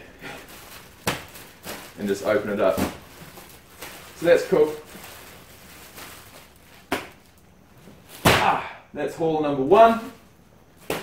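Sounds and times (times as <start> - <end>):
plastic bag crinkling: 0.1 - 8.2.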